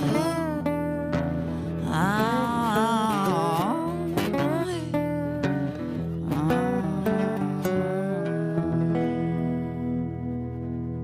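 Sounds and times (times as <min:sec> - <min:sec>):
acoustic guitar: 0:00.0 - 0:11.0
slide resonator guitar: 0:00.0 - 0:11.0.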